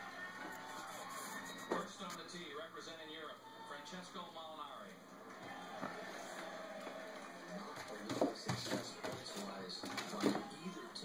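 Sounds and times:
faint commentary: 0.0 - 11.0
television music: 0.0 - 11.0.

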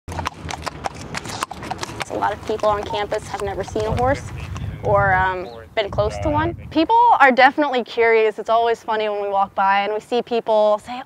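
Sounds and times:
horse hooves clip-clopping on concrete: 0.1 - 6.4.

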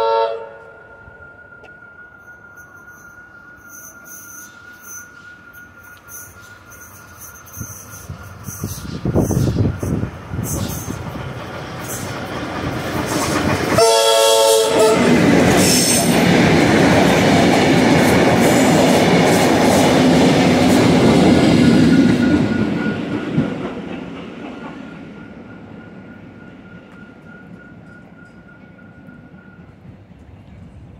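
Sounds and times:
train horn blast: 0.0 - 1.3, 13.7 - 16.1
train wheel and motor noise: 0.0 - 30.9
high whine: 0.4 - 11.1.

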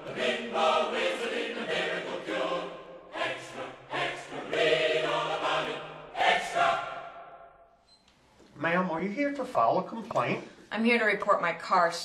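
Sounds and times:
choir singing a jingle: 0.0 - 7.6.

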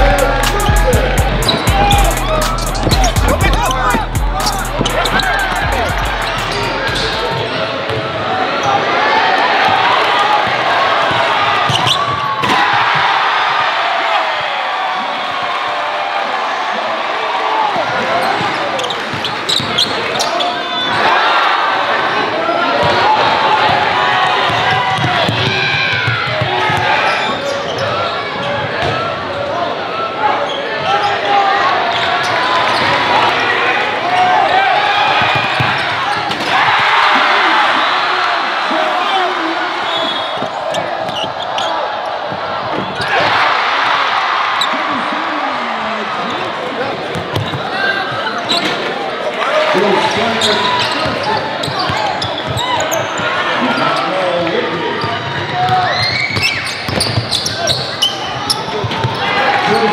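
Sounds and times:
crowd talking and shouting: 0.0 - 59.9
ball bouncing on hardwood court: 2.7 - 4.2, 24.5 - 26.9.

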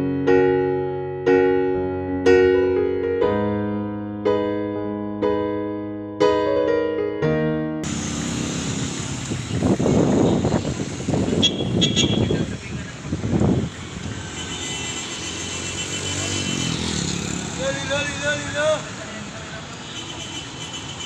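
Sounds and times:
piano music: 0.0 - 8.8
motor vehicles passing: 7.8 - 21.0
car horn toot: 11.3 - 12.6, 14.2 - 17.0, 19.8 - 21.0.

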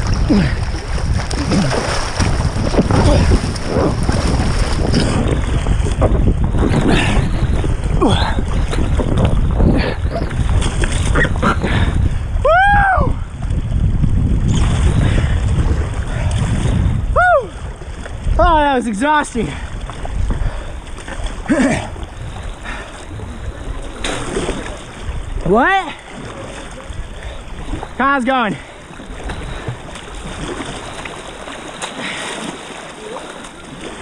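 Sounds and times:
river current rushing and splashing: 0.0 - 12.4, 13.2 - 34.0
wind rumble on microphone: 0.0 - 28.0, 28.6 - 31.6
river water rushing: 21.3 - 34.0.

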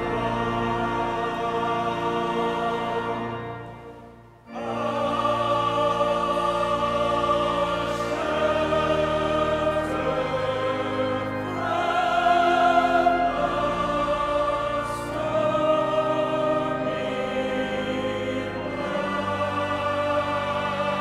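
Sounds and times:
slow classical choral music: 0.0 - 21.0.

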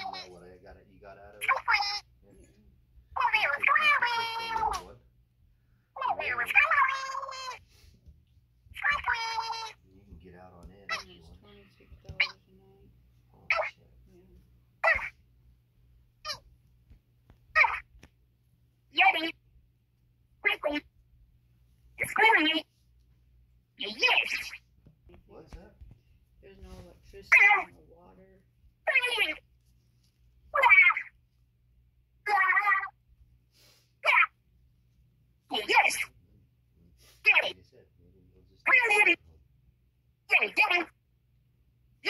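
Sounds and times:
high-pitched vocal squeaks: 0.0 - 0.4, 1.4 - 2.2, 3.2 - 4.9, 6.0 - 7.7, 8.7 - 9.8, 10.9 - 11.3, 12.1 - 12.4, 13.5 - 13.8, 14.8 - 15.2, 16.2 - 16.5, 17.5 - 18.0, 18.9 - 19.4, 20.4 - 20.9, 22.0 - 22.8, 23.8 - 24.7, 27.3 - 27.8, 28.9 - 29.4, 30.5 - 31.2, 32.2 - 33.0, 34.0 - 34.4, 35.5 - 36.2, 37.2 - 37.6, 38.6 - 39.2, 40.3 - 41.0.

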